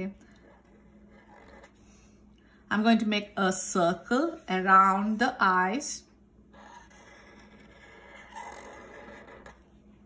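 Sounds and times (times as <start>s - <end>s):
marker scratching on paper: 0.4s - 2.1s, 6.5s - 9.6s.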